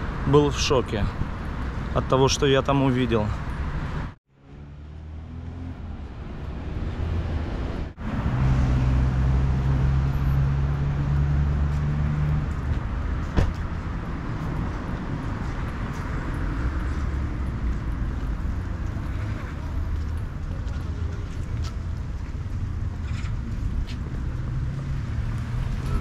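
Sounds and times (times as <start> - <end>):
road traffic rumble: 0.0 - 26.0
vehicle engine humming: 3.5 - 26.0.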